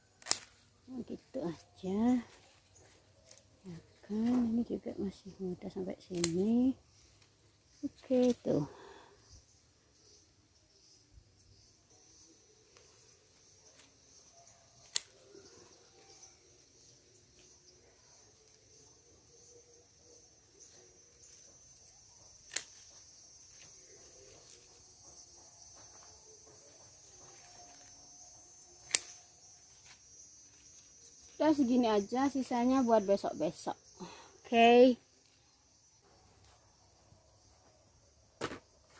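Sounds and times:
insects chirring: 0:00.0 - 0:38.9
scissors cutting stems: 0:00.2 - 0:00.6, 0:06.0 - 0:07.3, 0:14.7 - 0:16.2, 0:22.3 - 0:23.7, 0:28.8 - 0:31.4.

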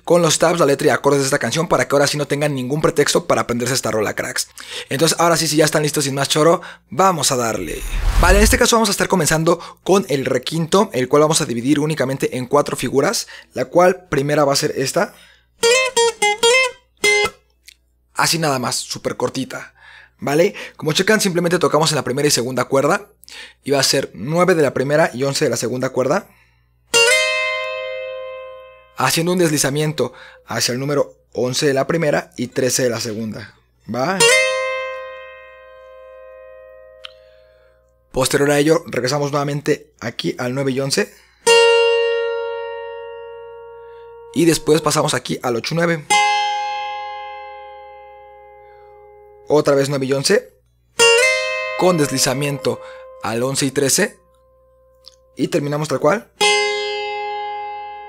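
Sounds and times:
twelve-string acoustic guitar dyad: 0:34.2 - 0:37.8, 0:41.4 - 0:44.4, 0:46.1 - 0:49.5, 0:51.0 - 0:55.4, 0:56.4 - 0:58.0.

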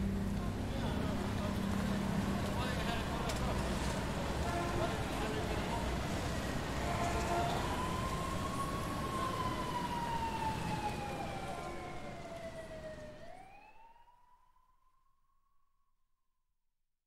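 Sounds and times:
siren wailing: 0:06.9 - 0:14.4.

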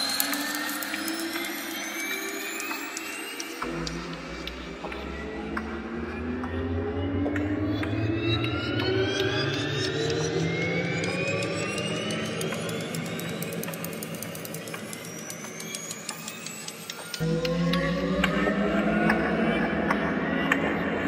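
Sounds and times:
synthesised bell drone rising: 0:00.0 - 0:21.0.

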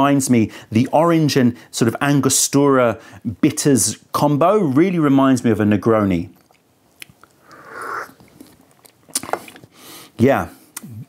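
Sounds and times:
mouth clicks and lip smacks: 0:06.3 - 0:09.8, 0:10.7 - 0:11.0
soft breath: 0:07.4 - 0:08.6.

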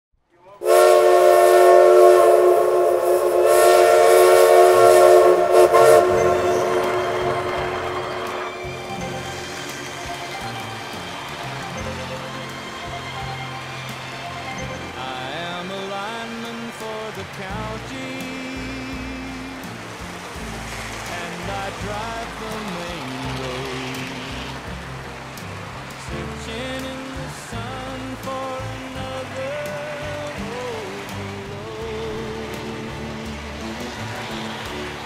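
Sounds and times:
train horn blast: 0:00.6 - 0:11.0, 0:33.6 - 0:35.0
music with low bass line: 0:17.4 - 0:35.0.

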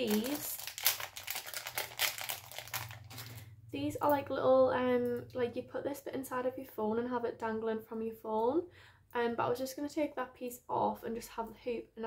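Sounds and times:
plastic packaging crinkling: 0:00.0 - 0:03.5.

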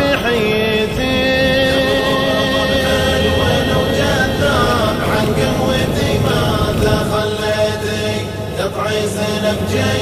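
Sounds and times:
voices chanting a sung poem: 0:00.0 - 0:10.0.

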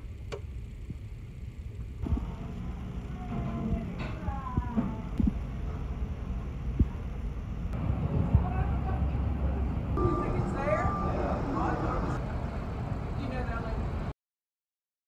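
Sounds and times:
steady low rumble: 0:00.0 - 0:14.1.

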